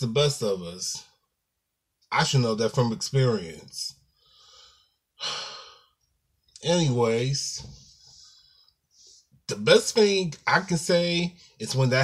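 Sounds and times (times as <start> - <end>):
man breathing: 4.1 - 6.0, 7.8 - 9.4.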